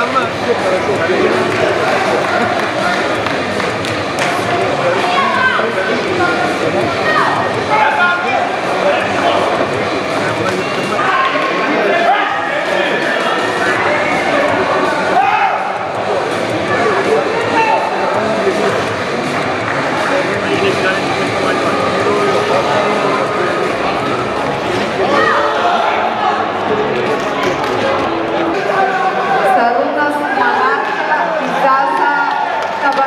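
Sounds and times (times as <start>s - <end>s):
overlapping voices and shouts: 0.1s - 33.0s.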